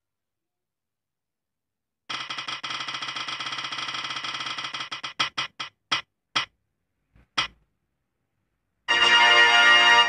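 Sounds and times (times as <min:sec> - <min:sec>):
spinning wheel ticking: 0:02.1 - 0:06.5.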